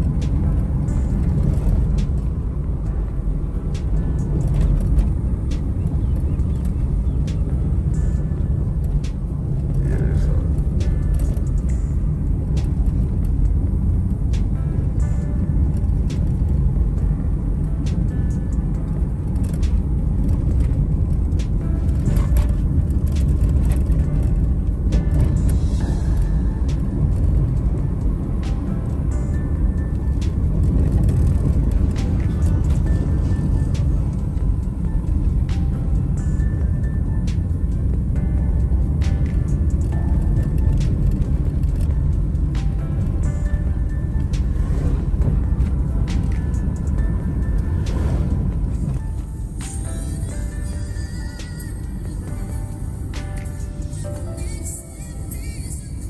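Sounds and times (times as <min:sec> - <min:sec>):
car driving rumble: 0:00.0 - 0:56.0
music playing: 0:00.0 - 0:56.0.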